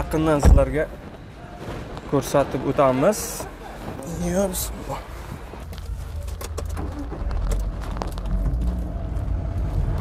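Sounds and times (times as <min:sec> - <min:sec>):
van engine and road rumble: 0:00.0 - 0:10.0.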